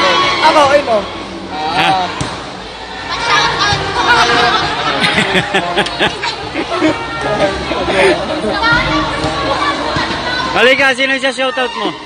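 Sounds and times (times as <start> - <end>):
children's voices and chatter: 0.0 - 12.0.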